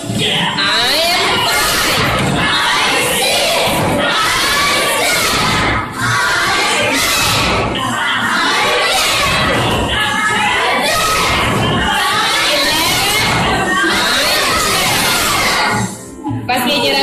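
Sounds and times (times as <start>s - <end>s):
young children shouting together: 1.2s - 15.8s.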